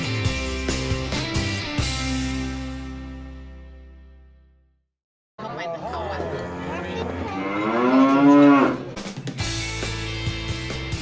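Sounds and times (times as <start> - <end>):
child mooing like a cow: 6.6 - 8.9.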